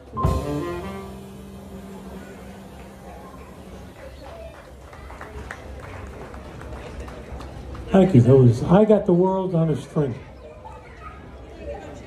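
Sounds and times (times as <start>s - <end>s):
background chatter: 0.0s - 12.0s.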